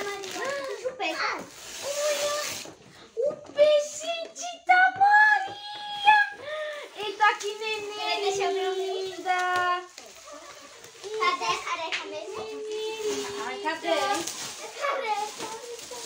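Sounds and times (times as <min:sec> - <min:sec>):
plastic gift wrap crinkling: 0:00.0 - 0:04.2, 0:04.8 - 0:16.0.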